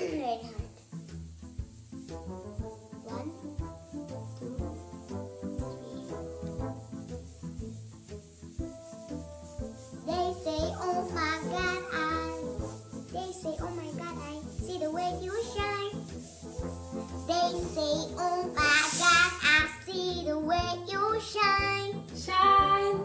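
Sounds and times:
background music: 0.0s - 23.0s
girl singing pop song: 3.0s - 6.3s, 10.0s - 16.1s, 17.2s - 23.0s.

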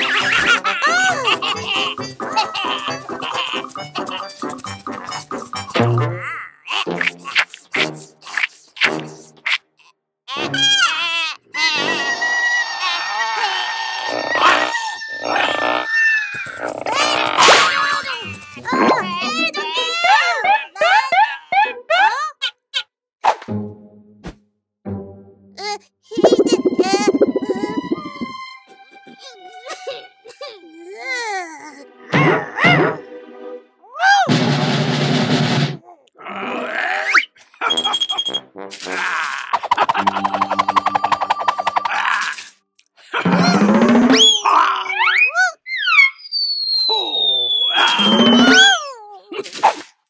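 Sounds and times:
cartoon monsters grunting: 6.0s - 9.1s, 13.5s - 20.2s, 36.0s - 37.2s, 38.8s - 40.2s, 41.8s - 45.1s
stuttering pulsed vocal sound: 26.2s - 28.3s.

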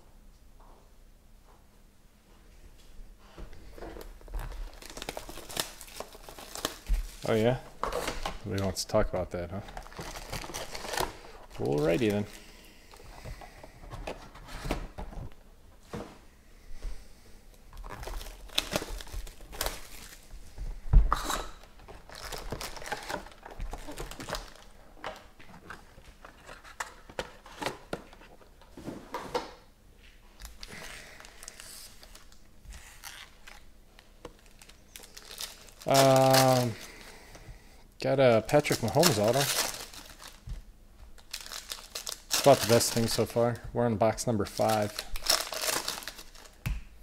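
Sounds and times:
foil wrappers crinkling: 3.8s - 8.9s, 9.6s - 13.1s, 17.7s - 20.4s, 21.2s - 27.7s, 30.4s - 37.4s, 38.2s - 46.7s.

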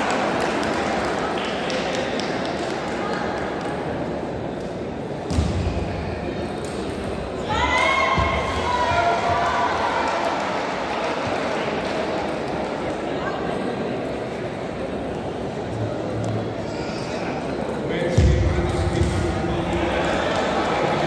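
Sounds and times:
murmur of voices: 0.0s - 21.0s.

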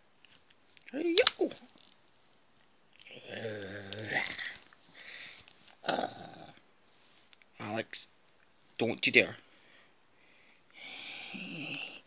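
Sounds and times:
breathy hiss: 3.0s - 5.6s, 9.4s - 12.0s
person grunting: 3.1s - 4.6s, 5.8s - 6.6s.

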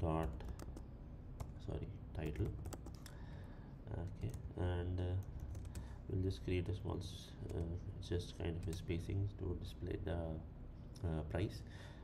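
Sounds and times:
keyboard keystrokes: 2.2s - 3.0s.

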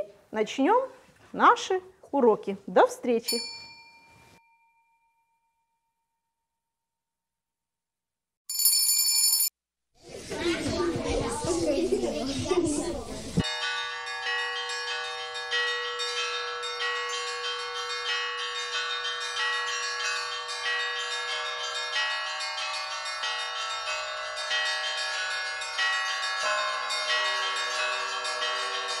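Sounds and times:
bells chiming: 3.3s - 5.8s, 8.5s - 9.5s, 11.0s - 29.0s.

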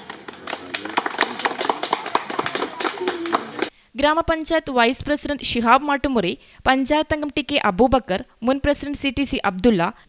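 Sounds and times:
faint voices: 0.0s - 3.7s
people applauding: 0.0s - 3.7s.

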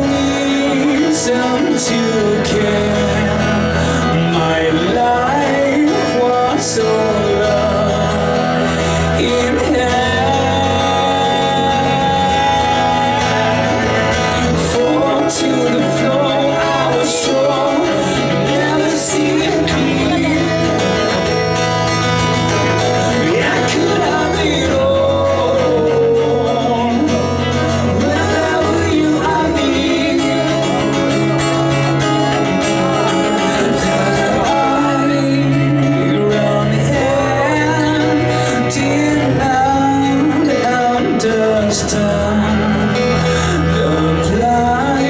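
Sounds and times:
bass guitar: 0.0s - 45.0s
electric guitar: 0.0s - 45.0s
man singing into a microphone: 0.0s - 45.0s.

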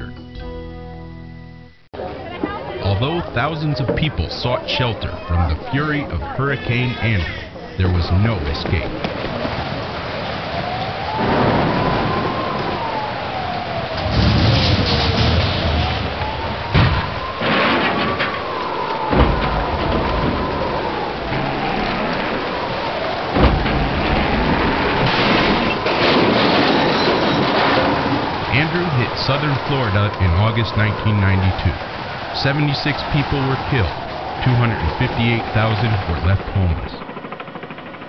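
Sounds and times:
heavy rain: 2.0s - 37.2s
howling wind: 2.0s - 38.0s
sudden bangs: 14.0s - 30.9s.

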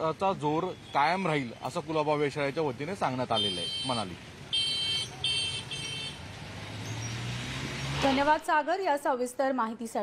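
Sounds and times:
road noise: 0.0s - 10.0s.

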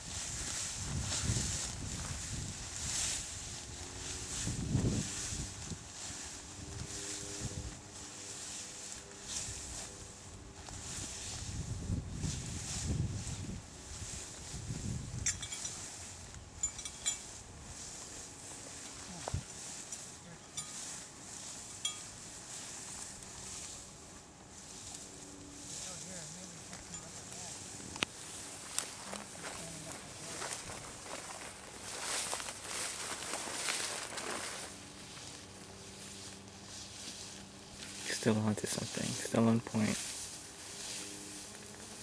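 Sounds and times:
footsteps swishing through grass: 0.0s - 16.6s, 17.2s - 42.0s.

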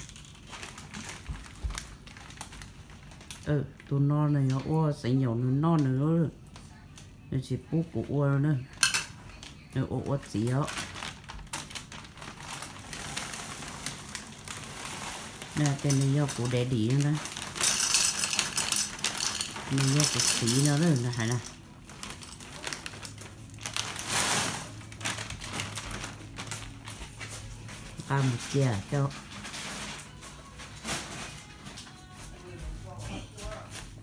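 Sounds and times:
plastic bag crinkling: 0.0s - 5.4s, 8.6s - 32.4s.

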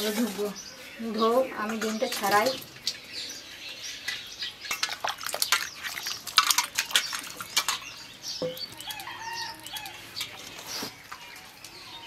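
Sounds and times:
birds chirping: 0.0s - 12.0s
metal bowls clinking: 4.0s - 12.0s.

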